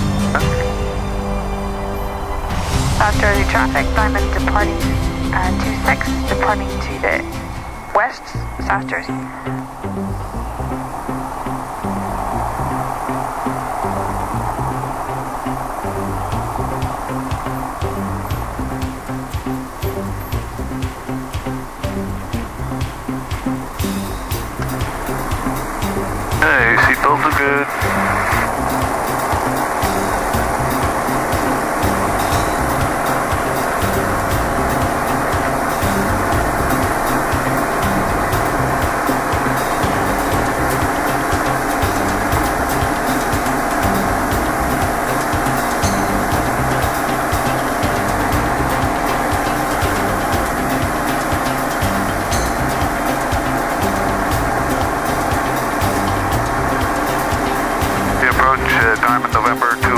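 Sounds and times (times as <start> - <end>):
light aircraft engine droning: 0.0 - 59.9.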